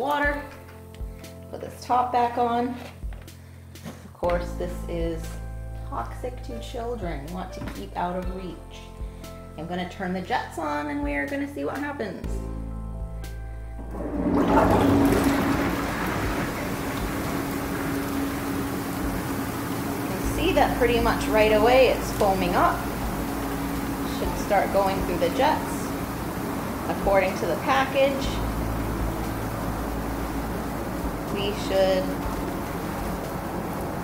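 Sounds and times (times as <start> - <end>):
jet pump humming: 13.8 - 34.0
jets churning water: 13.9 - 34.0.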